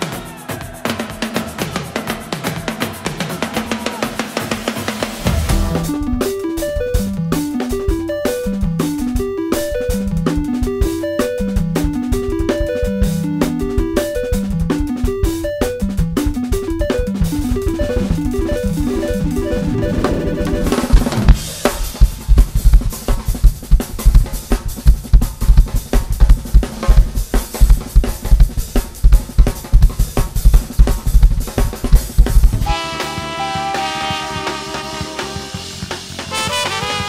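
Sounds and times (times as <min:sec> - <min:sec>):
drum kit playing: 0:00.0 - 0:37.0
descending run of pitched notes: 0:02.5 - 0:22.4.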